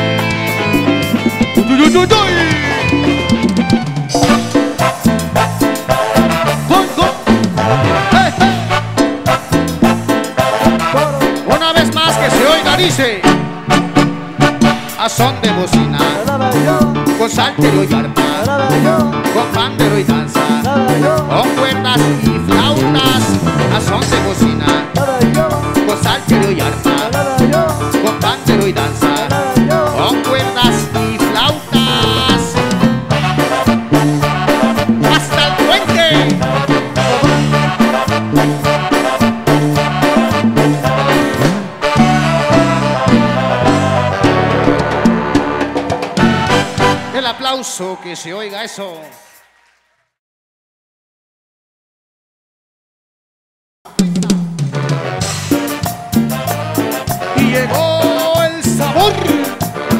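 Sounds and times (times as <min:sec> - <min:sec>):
bass: 0:00.0 - 0:47.4, 0:53.9 - 0:59.9
driving percussion beat: 0:00.0 - 0:49.7, 0:53.9 - 0:59.9
live band playing: 0:00.0 - 0:49.9, 0:53.9 - 0:59.9.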